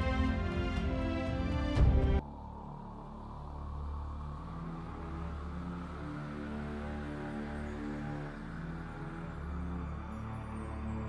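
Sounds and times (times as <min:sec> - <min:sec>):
deep low drone: 0:00.0 - 0:11.0
slow dark background music: 0:00.0 - 0:11.0.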